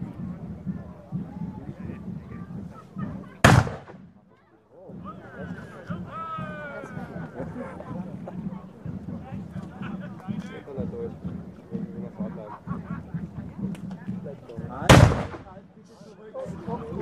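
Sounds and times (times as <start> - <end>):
murmur of people talking: 0.0 - 17.0
cannon shot boom: 3.4 - 4.0, 14.9 - 15.5.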